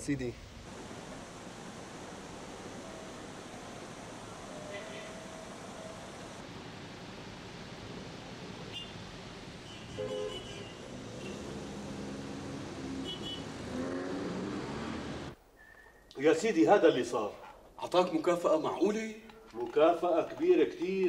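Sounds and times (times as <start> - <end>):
cars driving past: 0.6 - 15.4
car horn beeps: 4.5 - 5.5, 9.7 - 11.5, 13.0 - 13.5.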